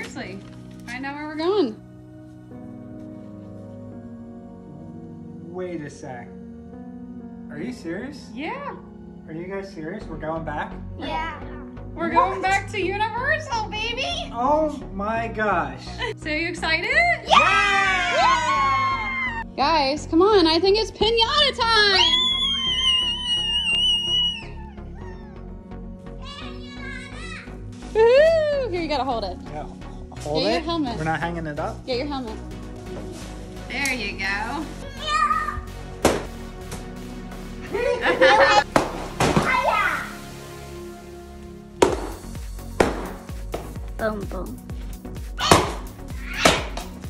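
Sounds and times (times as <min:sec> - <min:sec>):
girl squealing excitedly: 0:17.3 - 0:19.4, 0:21.9 - 0:25.4, 0:45.4 - 0:46.8
music with steady beat: 0:35.6 - 0:47.0
stick swatting paper pinata: 0:38.7 - 0:39.7, 0:42.8 - 0:43.7, 0:45.4 - 0:46.9.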